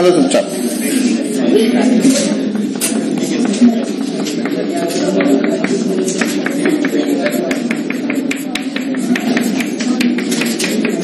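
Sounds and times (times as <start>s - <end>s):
murmur of voices: 0.0s - 11.0s
chalk tapping on chalkboard: 2.0s - 11.0s.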